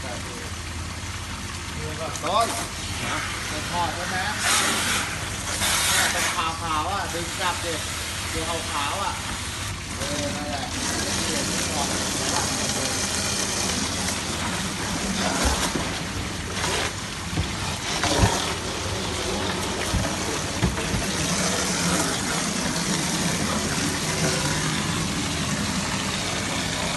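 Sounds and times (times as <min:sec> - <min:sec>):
water splashing in a tub: 0:00.0 - 0:26.9
sharp knocks: 0:19.8 - 0:21.5.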